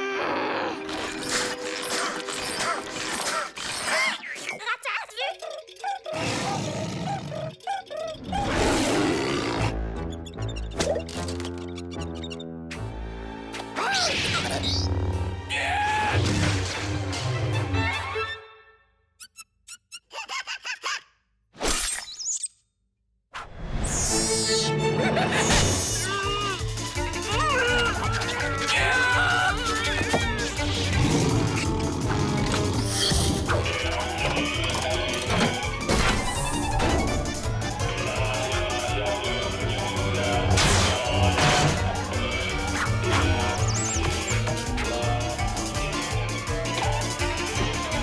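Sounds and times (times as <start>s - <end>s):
cartoon background music: 0.0s - 21.0s, 23.7s - 48.0s
cartoon ticks: 4.4s - 8.8s
rapid short squeaks: 10.0s - 12.5s, 19.2s - 20.3s.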